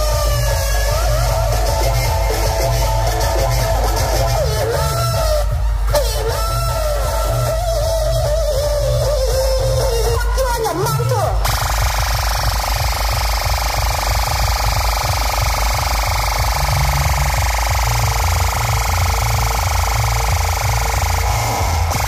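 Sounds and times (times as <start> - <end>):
pounding bass beat: 0.0 - 22.0.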